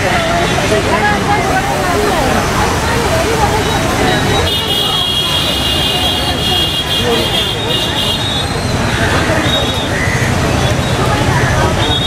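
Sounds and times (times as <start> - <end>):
crowd voices: 0.0 - 12.0
flooded river rushing: 0.0 - 12.0.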